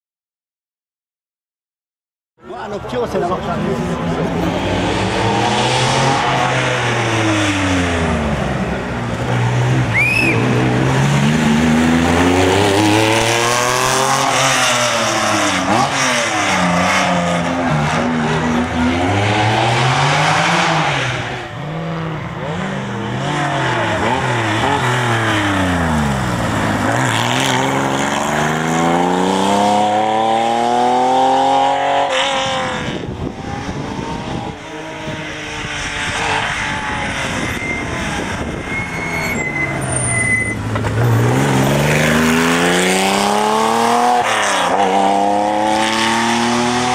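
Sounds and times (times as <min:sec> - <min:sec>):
rally car engine revving hard: 0:03.6 - 0:46.9.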